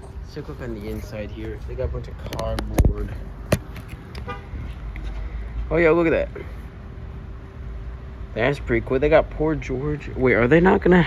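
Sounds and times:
traffic rumble: 0.0s - 11.0s
wind: 0.0s - 11.0s.

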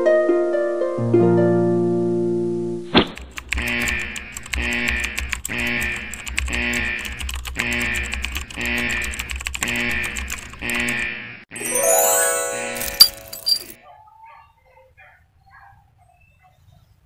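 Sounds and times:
keyboard typing clicks: 3.2s - 10.9s.

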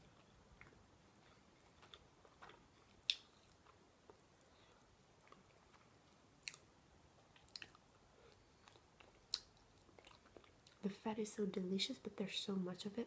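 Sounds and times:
quiet chewing of meat: 0.0s - 10.8s.

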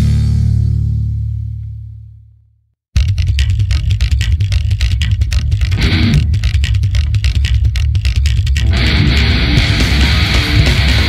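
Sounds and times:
loud bass line: 0.0s - 2.4s, 3.0s - 11.0s
distorted electric guitar: 3.0s - 11.0s
rapid drum hits: 3.0s - 11.0s.

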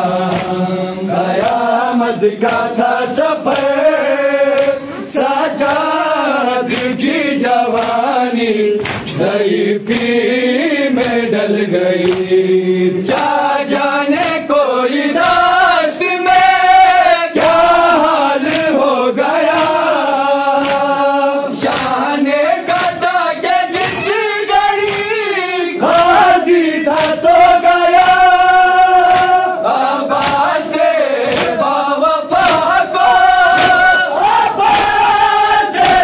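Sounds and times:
men chanting in unison: 0.0s - 36.0s
hands slapping chests: 0.1s - 15.6s, 17.3s - 36.0s.

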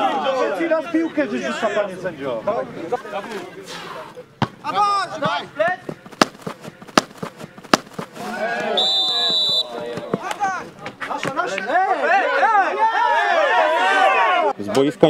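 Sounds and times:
players shouting: 3.8s - 14.6s
boot kicking football: 4.4s - 8.3s, 9.1s - 11.5s
referee's whistle blast: 8.7s - 9.8s.

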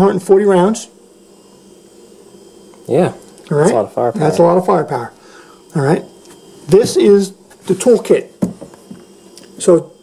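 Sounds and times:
man speaking: 2.9s - 6.1s.

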